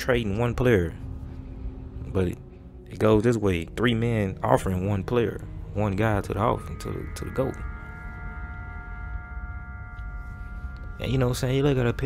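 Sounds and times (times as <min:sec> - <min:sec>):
bell-like chord tones: 0:00.0 - 0:12.0
low bass: 0:00.0 - 0:12.0.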